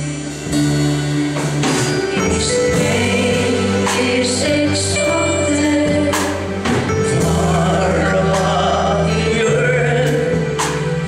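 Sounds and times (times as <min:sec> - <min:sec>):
bass part: 0:00.0 - 0:11.0
instrumental backing: 0:00.0 - 0:11.0.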